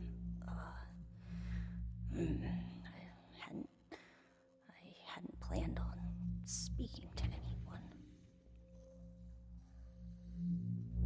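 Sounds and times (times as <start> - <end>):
whispered breathy vocal sounds: 0.0 - 1.2, 2.1 - 8.3
low steady hum: 0.0 - 11.0.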